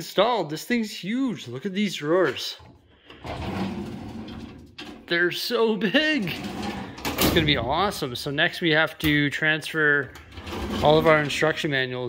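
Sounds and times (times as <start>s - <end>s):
metal drawer rolling open: 2.7s - 5.2s, 6.2s - 8.3s, 10.0s - 11.7s.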